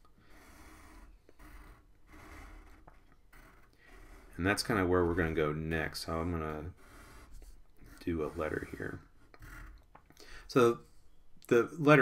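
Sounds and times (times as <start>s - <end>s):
pencil scratching on paper: 0.0s - 9.8s.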